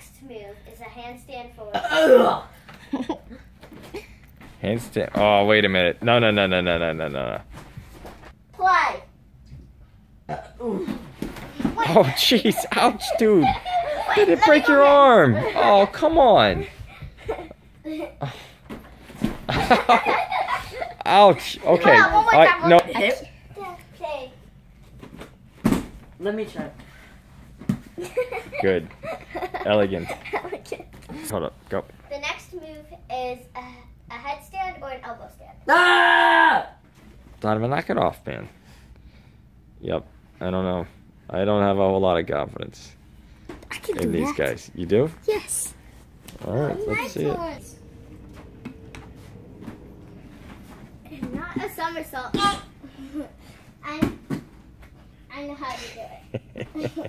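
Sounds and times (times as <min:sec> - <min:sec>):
faint steady hum: 0:36.6 - 0:57.0.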